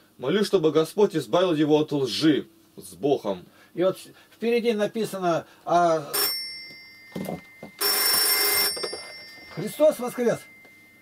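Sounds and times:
telephone ringing: 6.0s - 11.0s.

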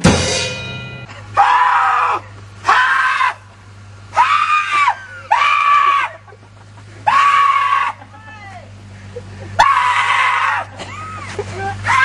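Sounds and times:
man screaming high-pitched: 1.4s - 3.5s, 7.1s - 8.6s, 9.6s - 10.7s.

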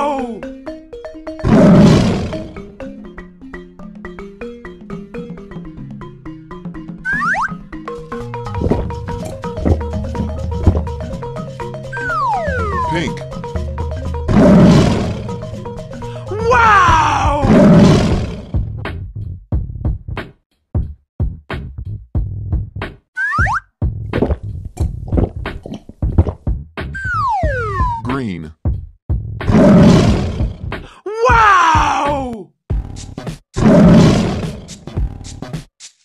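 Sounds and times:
lion roar: 1.4s - 2.6s, 14.3s - 15.4s, 16.2s - 18.6s, 29.5s - 30.7s, 33.6s - 34.8s
drum-machine beat: 8.4s - 14.3s, 23.8s - 29.4s
background music with beat hits: 32.7s - 33.5s, 34.7s - 36.0s.

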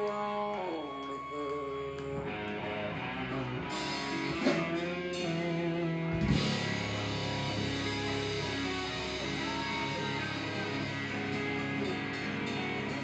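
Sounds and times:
rock band with electric guitar: 0.0s - 13.0s.

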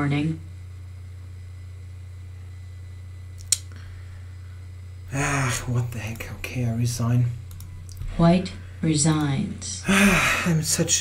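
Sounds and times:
low room hum: 0.0s - 11.0s
sharp click: 3.4s - 3.7s.

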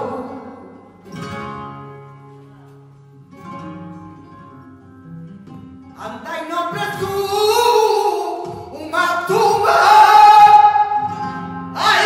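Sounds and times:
flamenco guitar strummed chords: 0.0s - 12.0s.

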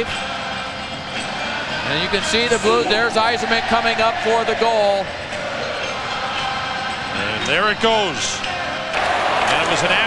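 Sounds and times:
arena crowd din: 0.0s - 10.0s.

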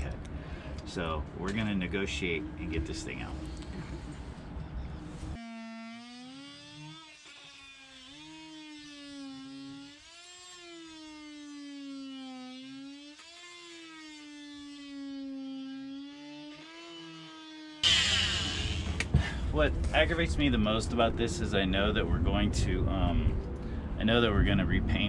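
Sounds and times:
oscillating multi-tool whining: 4.6s - 19.1s.

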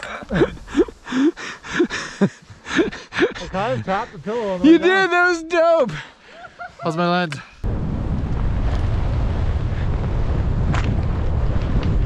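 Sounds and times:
wind rushing over microphone: 7.6s - 12.0s.

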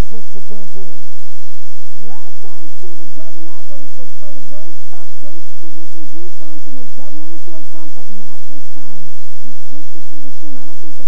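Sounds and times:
voices without clear words: 0.0s - 11.0s.

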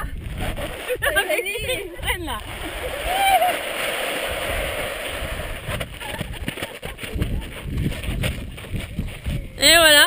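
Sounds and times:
wind rumbling on microphone: 0.0s - 10.0s.

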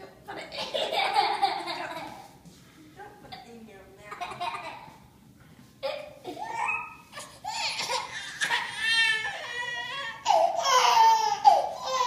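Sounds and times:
infant crying: 6.4s - 12.0s.

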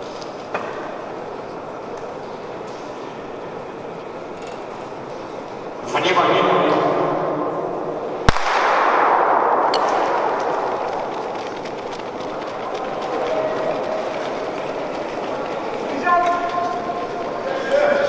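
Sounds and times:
indoor hall noise: 0.0s - 18.0s
starting pistol crack: 8.2s - 12.2s.

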